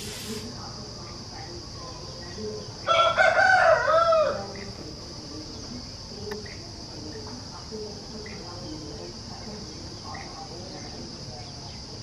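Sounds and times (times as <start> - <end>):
faint scattered calls: 0.0 - 12.0
insect drone: 0.0 - 12.0
rooster crowing: 2.9 - 4.4.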